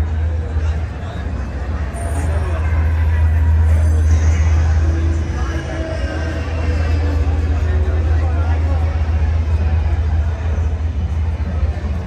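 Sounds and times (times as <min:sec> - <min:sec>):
loud low droning rumble: 0:00.0 - 0:12.0
people talking: 0:00.0 - 0:12.0.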